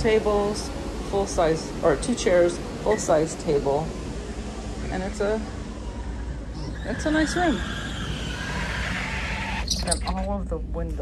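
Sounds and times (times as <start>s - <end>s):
steady low hum: 0.0s - 11.0s
sliding glass door squeaking: 6.5s - 10.3s.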